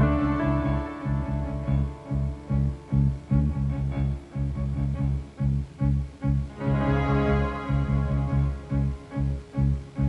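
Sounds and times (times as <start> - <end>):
electric bass pulsing low notes: 0.0 - 10.0.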